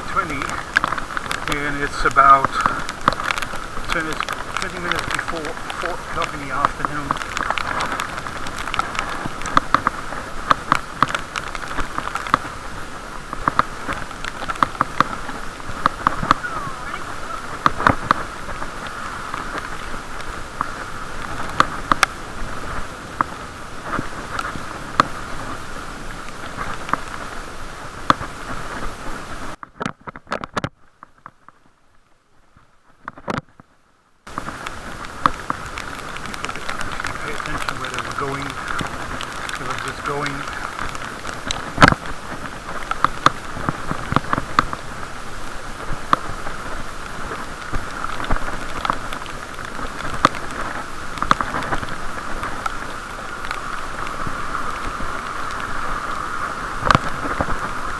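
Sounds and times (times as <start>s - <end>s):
muffled road and rain hiss: 0.0s - 57.9s.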